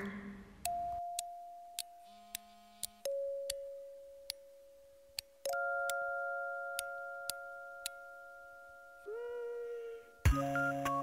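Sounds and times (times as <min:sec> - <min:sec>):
sharp ticking clicks: 0:00.6 - 0:06.1, 0:06.7 - 0:08.0.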